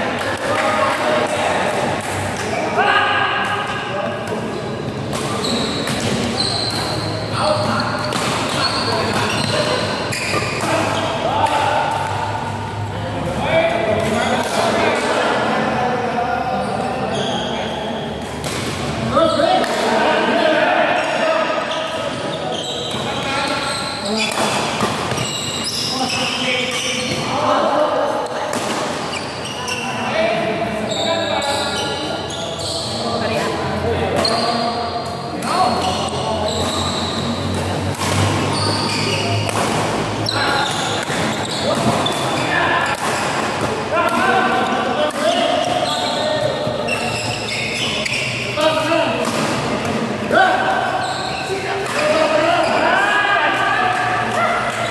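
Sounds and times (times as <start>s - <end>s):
rackets striking shuttlecock: 3.4s - 12.6s, 35.0s - 47.2s.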